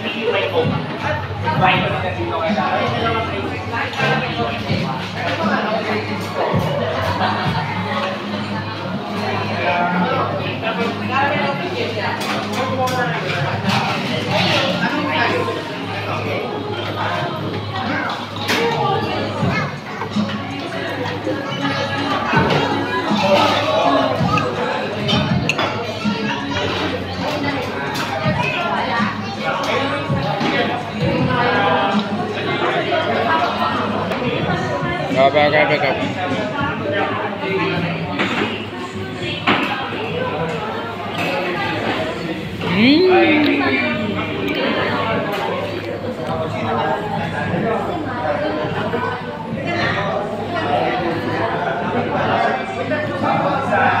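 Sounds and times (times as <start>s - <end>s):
customers chattering: 0.0s - 54.0s
indistinct talking: 0.0s - 54.0s.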